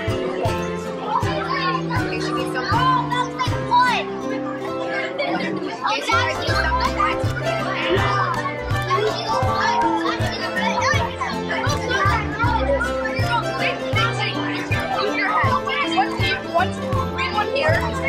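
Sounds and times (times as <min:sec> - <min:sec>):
children chattering: 0:00.0 - 0:18.0.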